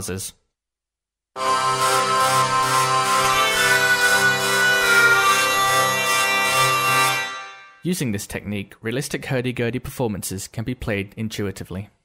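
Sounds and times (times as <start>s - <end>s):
buzzing string pulse: 1.4s - 7.8s
hurdy-gurdy drone and melody: 1.4s - 7.8s.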